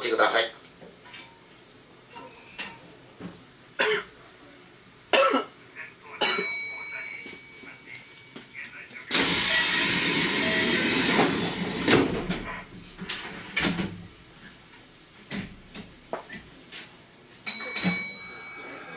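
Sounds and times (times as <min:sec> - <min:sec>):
loud compressed-air hiss: 0:09.1 - 0:13.1
short ringing chime: 0:17.5 - 0:18.9.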